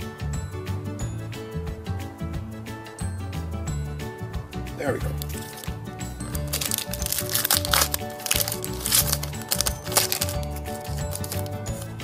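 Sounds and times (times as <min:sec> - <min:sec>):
foil wrapper crinkling and tearing: 0:05.1 - 0:12.0.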